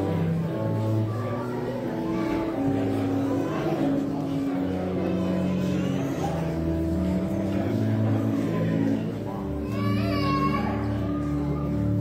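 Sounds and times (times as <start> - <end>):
organ sustained chords: 0.0 - 9.6.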